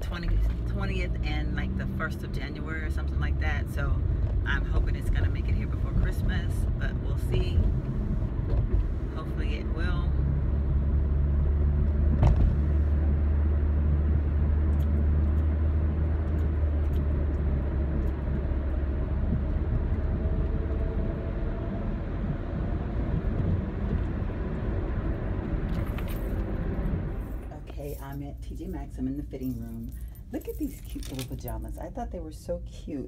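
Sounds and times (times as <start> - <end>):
engine and road drone: 0.0 - 27.7.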